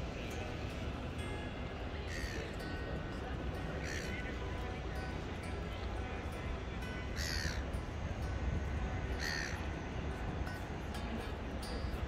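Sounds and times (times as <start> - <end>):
bird cawing: 2.1 - 2.5, 3.8 - 4.2, 7.2 - 7.6, 9.2 - 9.6.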